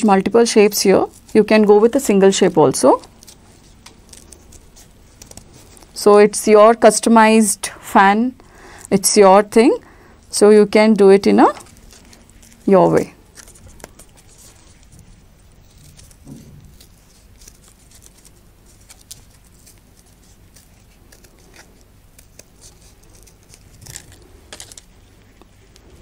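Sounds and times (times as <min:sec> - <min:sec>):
paper crinkling: 0:00.5 - 0:07.0, 0:11.1 - 0:26.0
scissors snipping paper: 0:00.6 - 0:06.0, 0:11.3 - 0:15.0, 0:15.6 - 0:26.0.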